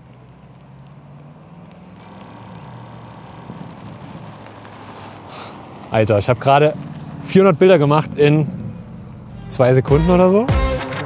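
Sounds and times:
car engine hum: 0:00.0 - 0:09.7
camera shutter buzz: 0:02.0 - 0:05.3.

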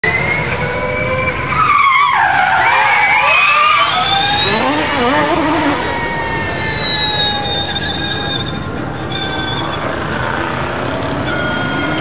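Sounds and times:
tyres skidding and squealing: 0:00.0 - 0:12.0
electric motors whining: 0:02.3 - 0:10.3.

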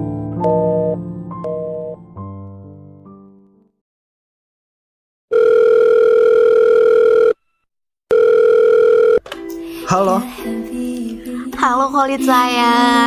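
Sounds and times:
telephone ringback tone: 0:05.3 - 0:07.4, 0:08.1 - 0:09.2.

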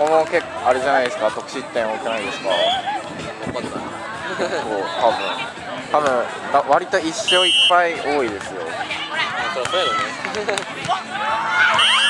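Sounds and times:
people chattering and calling: 0:00.0 - 0:12.0.

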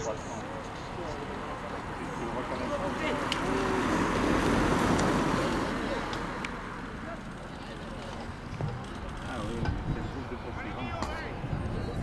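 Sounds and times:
faint indistinct voices: 0:00.0 - 0:12.0
vehicle road and engine noise: 0:00.0 - 0:12.0
wind on microphone: 0:09.4 - 0:12.0.

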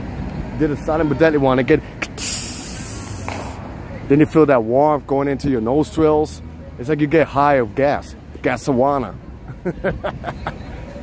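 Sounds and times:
low traffic rumble: 0:00.0 - 0:11.0
person hissing with mouth: 0:02.1 - 0:03.3.

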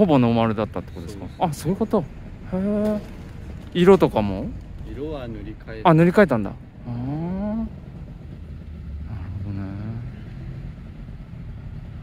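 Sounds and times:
distant motorcycle engine idling: 0:00.0 - 0:12.0.

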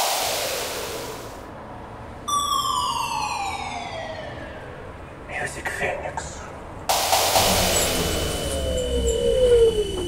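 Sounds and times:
hiss: 0:00.0 - 0:01.4, 0:06.9 - 0:09.1
high whine sliding down: 0:06.9 - 0:10.0.

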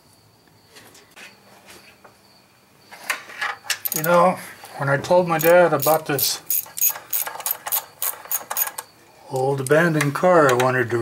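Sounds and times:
ratchet wrench clicking: 0:03.8 - 0:04.2, 0:05.4 - 0:09.8.

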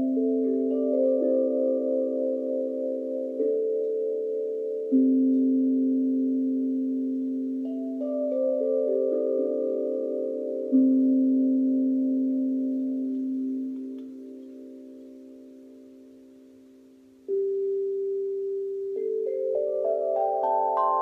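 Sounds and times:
steel tongue drum notes ringing: 0:00.0 - 0:21.0.

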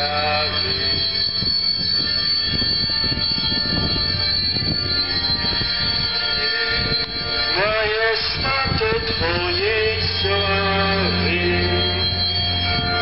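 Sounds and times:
church bells ringing: 0:00.0 - 0:13.0.

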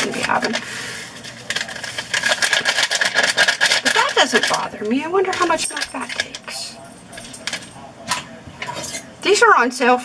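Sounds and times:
kitchen items clicking and clinking: 0:00.0 - 0:09.1.

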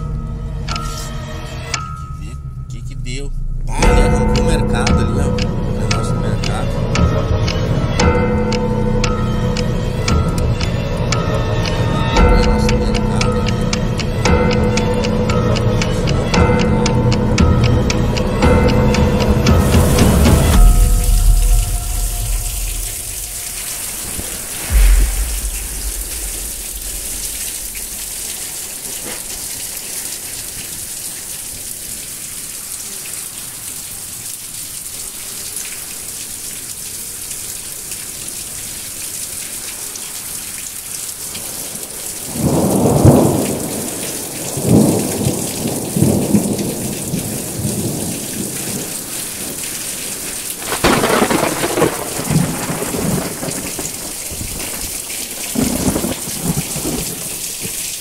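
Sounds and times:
thunder rumbling: 0:02.0 - 0:29.4, 0:41.6 - 0:58.0
rain on a tiled roof: 0:03.8 - 0:58.0.

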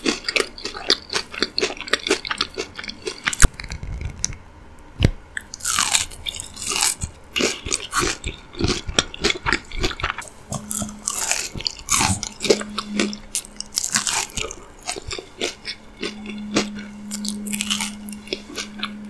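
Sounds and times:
person chewing crunchy fried food: 0:00.0 - 0:04.3, 0:05.4 - 0:19.0.

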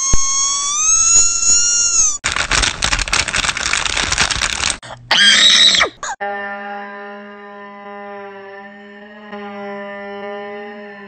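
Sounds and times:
person squealing: 0:04.8 - 0:06.2.

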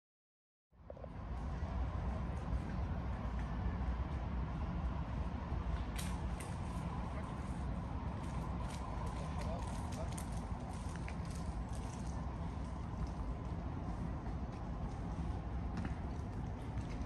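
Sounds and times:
low street rumble: 0:00.7 - 0:17.0.

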